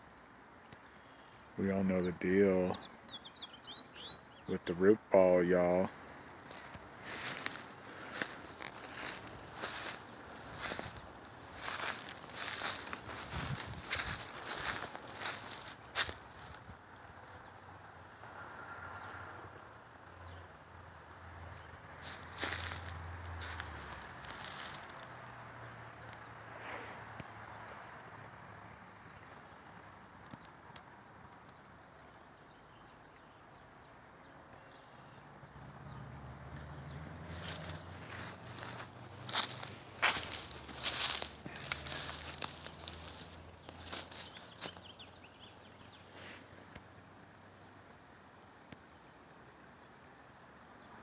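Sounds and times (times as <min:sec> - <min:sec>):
footsteps on dry leaves: 0:05.2 - 0:16.8, 0:22.0 - 0:25.3, 0:36.9 - 0:45.2.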